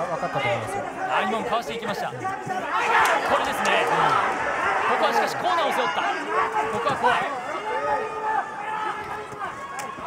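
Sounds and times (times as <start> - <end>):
commentators speaking: 0.0 - 9.6
murmur of arena crowd: 0.0 - 10.0.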